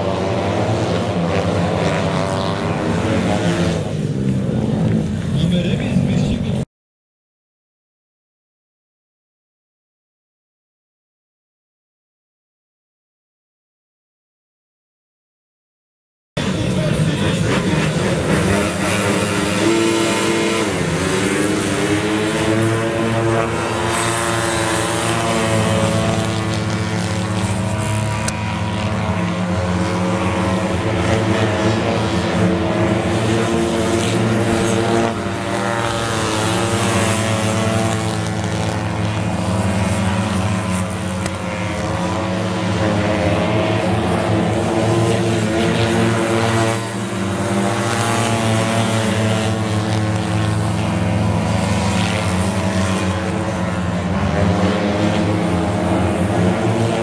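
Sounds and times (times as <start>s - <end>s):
motorcycles racing: 0.0s - 6.6s, 16.4s - 57.0s.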